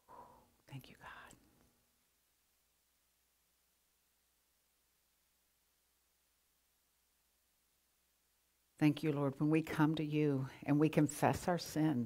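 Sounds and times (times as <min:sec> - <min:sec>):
person whispering: 0:00.0 - 0:01.5.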